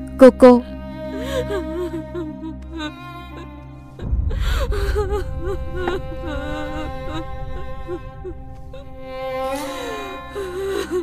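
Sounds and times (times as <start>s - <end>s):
sad string music: 0.0s - 11.0s.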